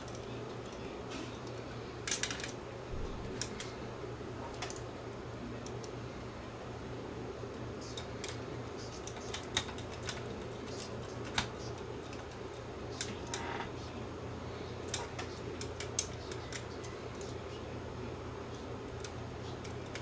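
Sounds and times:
small parts clicking and tapping: 0.0 - 2.6, 7.9 - 13.5, 14.8 - 17.4
steady low hum: 0.0 - 20.0.

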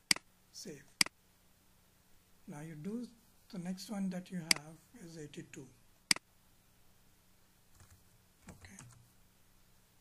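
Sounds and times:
faint keyboard keystrokes: 7.7 - 9.1.

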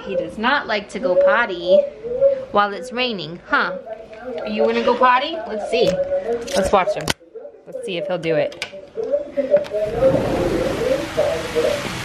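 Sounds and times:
heavy rain pouring: 9.6 - 12.0.

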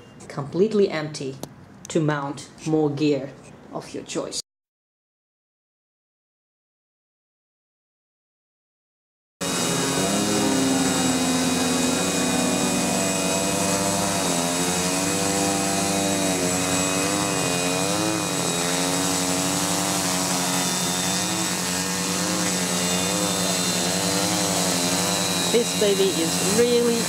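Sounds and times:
drone motors and propellers hovering: 9.4 - 27.0.

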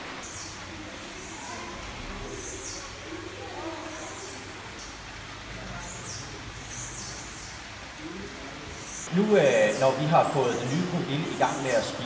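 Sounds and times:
steady background noise: 0.0 - 12.0
bird chirping: 0.2 - 3.0, 5.7 - 7.8.

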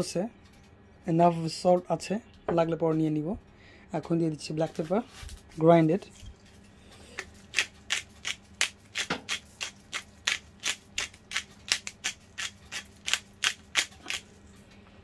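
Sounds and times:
pepper grinder crunching: 7.2 - 14.4.

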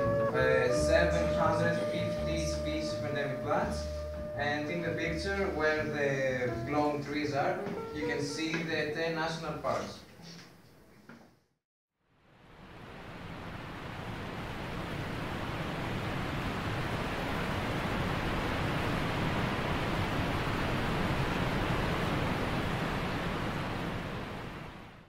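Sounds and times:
waterfall rushing: 12.6 - 24.7.

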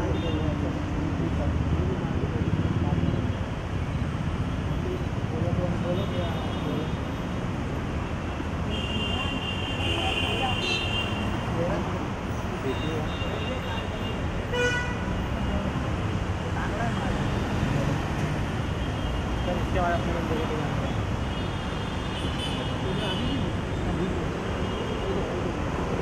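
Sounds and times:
street traffic noise: 0.0 - 26.0
vehicle horns tooting: 12.8 - 15.1.

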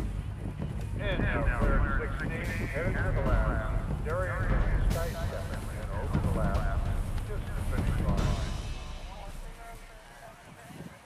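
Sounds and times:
low rumble: 0.0 - 10.4
indistinct commentator voice: 1.0 - 11.0.

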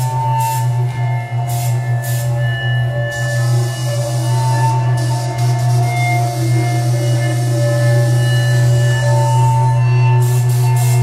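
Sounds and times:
experimental synthesizer music: 0.0 - 11.0
loud low synthesizer drone: 0.0 - 11.0.

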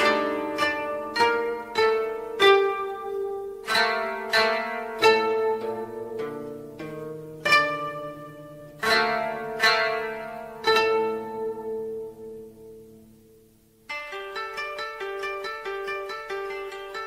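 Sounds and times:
koto plucked strings: 0.0 - 17.0.

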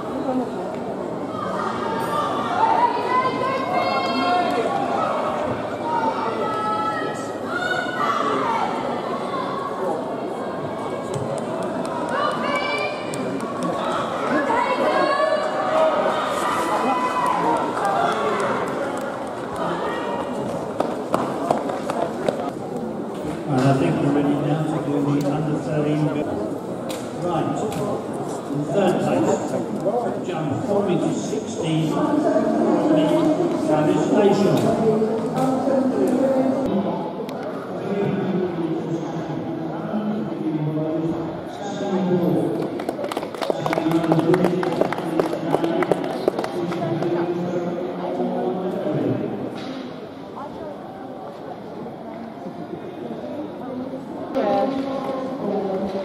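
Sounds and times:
crowd chatter: 0.0 - 56.0
spectators calling and cheering: 1.2 - 22.6
audience clapping: 42.6 - 47.1.

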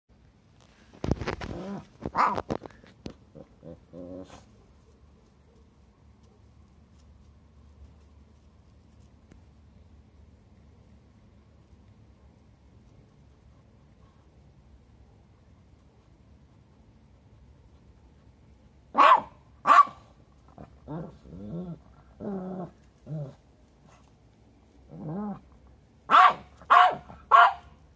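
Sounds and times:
dog barking: 18.9 - 20.1, 26.1 - 27.8.

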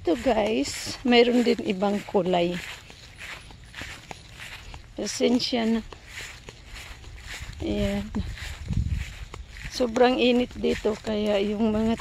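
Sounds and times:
footsteps on grass: 0.0 - 12.0.

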